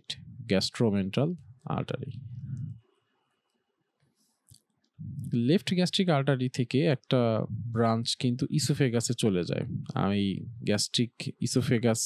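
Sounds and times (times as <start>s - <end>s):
man speaking: 0.0s - 2.8s, 5.0s - 12.0s.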